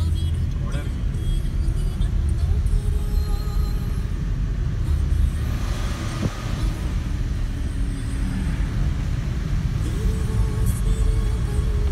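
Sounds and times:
car driving on wet road: 0:00.0 - 0:11.9.

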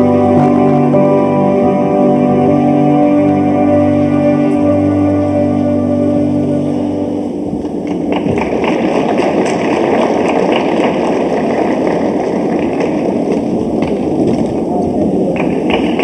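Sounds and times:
sustained music chord: 0:00.0 - 0:07.8
audience applause: 0:07.9 - 0:13.8.

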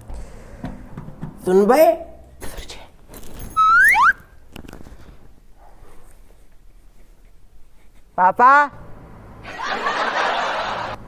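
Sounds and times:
rising whistle: 0:03.6 - 0:04.2.

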